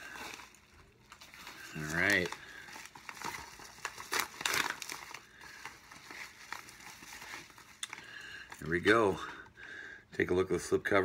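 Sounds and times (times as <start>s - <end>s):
packaging crinkling: 0.0s - 9.4s.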